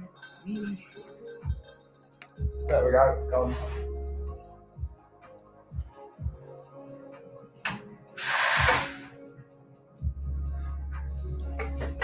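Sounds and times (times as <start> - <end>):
steam wand hiss: 8.2 - 9.2.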